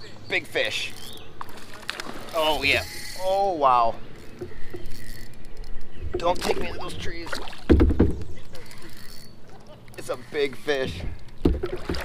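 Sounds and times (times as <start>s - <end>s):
water: 0.0s - 12.0s
fishing reel ticking: 2.5s - 5.8s, 8.6s - 10.5s.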